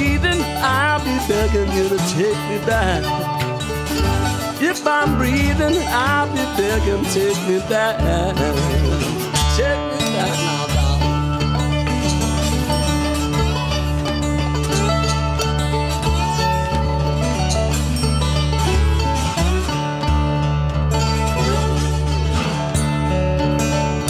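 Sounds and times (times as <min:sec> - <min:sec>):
mandolin: 0:00.0 - 0:24.0
percussion: 0:00.0 - 0:24.0
slide guitar: 0:00.0 - 0:24.0
steady low bass notes: 0:00.0 - 0:24.0.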